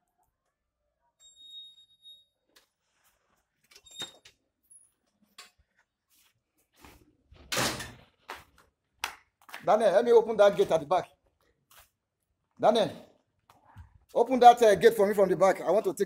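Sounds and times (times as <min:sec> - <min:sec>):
door squeak: 0:03.8 - 0:04.3.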